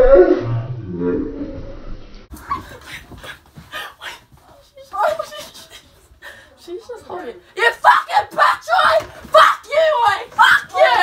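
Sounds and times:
indistinct voices: 2.3s - 11.0s
scuffling: 7.8s - 11.0s.

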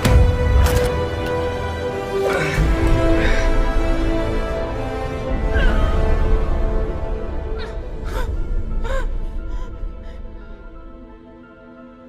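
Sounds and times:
dark film score with deep rumble: 0.0s - 12.0s
woman gasping and straining: 7.4s - 10.8s.

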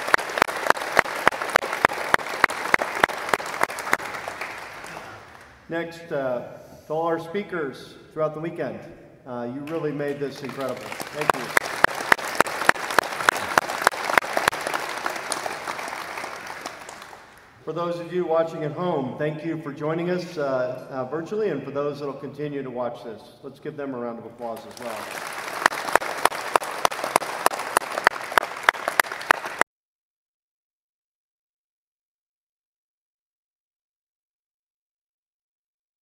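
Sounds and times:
audience applause: 0.0s - 5.6s, 10.3s - 17.6s, 24.6s - 29.6s
hands clapping loudly nearby: 0.0s - 5.6s, 9.6s - 17.5s, 24.6s - 29.6s.

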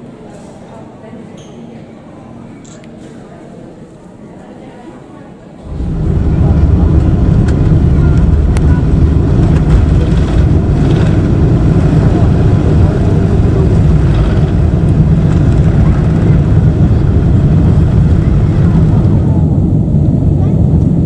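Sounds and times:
jet engines roaring: 5.6s - 21.0s
runway rumble: 5.6s - 21.0s.

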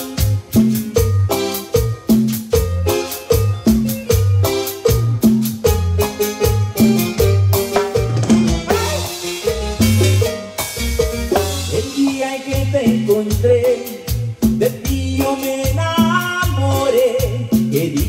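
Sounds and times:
drums: 0.0s - 18.0s
electric bass: 0.0s - 18.0s
keyboard: 0.0s - 18.0s.

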